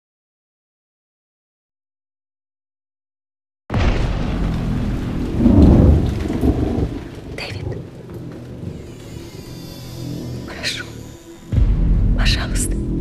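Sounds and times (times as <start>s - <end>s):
deep rolling rumble: 3.7s - 9.5s.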